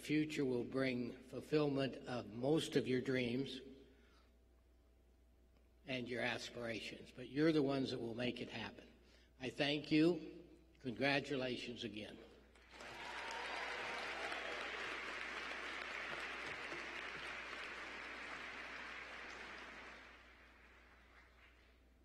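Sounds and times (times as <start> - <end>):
audience applauding: 12.6 - 21.9.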